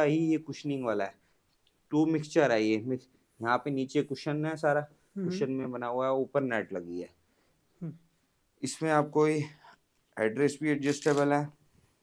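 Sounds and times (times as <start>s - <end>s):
man talking: 0.0s - 1.2s, 1.9s - 7.2s, 8.6s - 11.6s.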